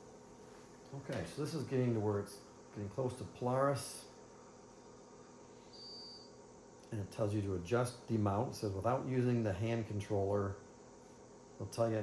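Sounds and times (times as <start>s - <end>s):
faint high-pitched tone: 5.7s - 6.4s.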